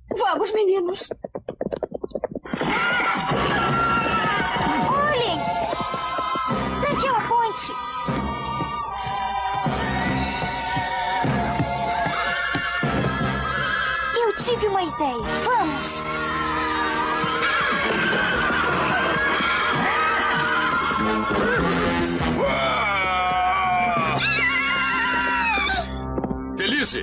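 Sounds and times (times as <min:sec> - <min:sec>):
background music: 0:03.1 - 0:27.0.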